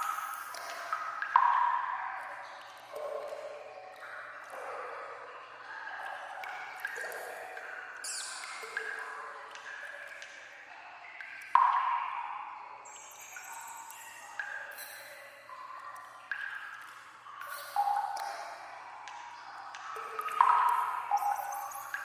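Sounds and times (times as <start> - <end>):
water drops plopping in tunnel: 0.0 - 5.3, 6.0 - 10.5, 11.1 - 22.0.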